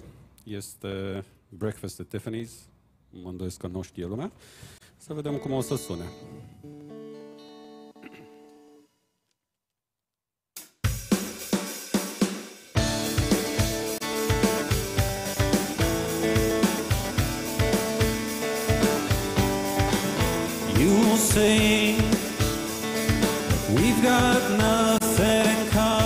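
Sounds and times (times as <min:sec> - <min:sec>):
guitar strumming with percussive hits: 0:05.4 - 0:08.8, 0:12.8 - 0:26.0
acoustic guitar held chord: 0:05.7 - 0:08.9, 0:12.8 - 0:26.0.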